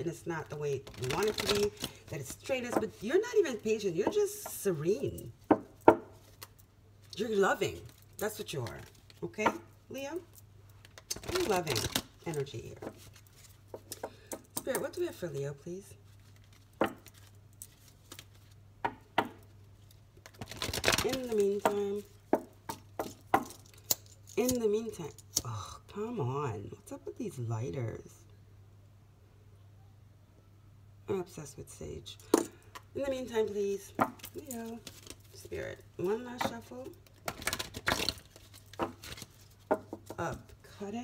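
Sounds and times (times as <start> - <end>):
rustling handling noise: 0.0 - 18.8, 19.4 - 25.3, 32.2 - 40.8
cards being shuffled: 0.5 - 9.6, 10.8 - 15.4, 16.0 - 18.6, 19.2 - 24.6, 33.3 - 40.6.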